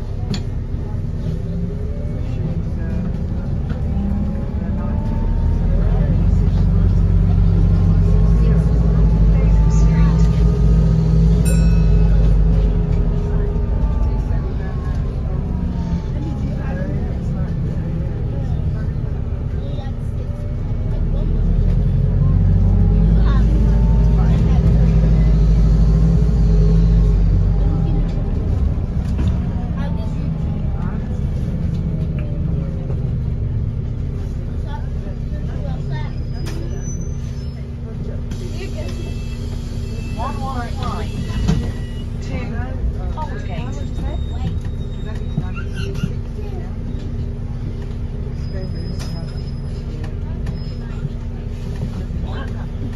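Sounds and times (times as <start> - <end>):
bus drivetrain and road rumble: 0.0 - 52.9
passengers talking: 0.0 - 52.9.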